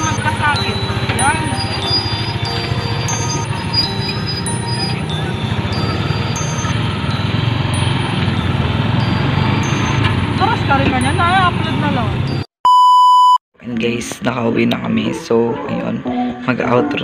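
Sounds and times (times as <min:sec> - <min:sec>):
electronic beep tone: 0:00.0 - 0:05.4, 0:08.9 - 0:10.4, 0:12.3 - 0:13.4
vehicle engine and road noise: 0:00.0 - 0:12.5.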